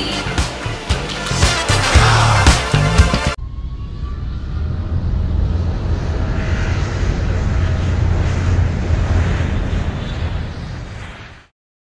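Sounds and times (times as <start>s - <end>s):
jet engine rumble and hiss: 4.4s - 11.5s.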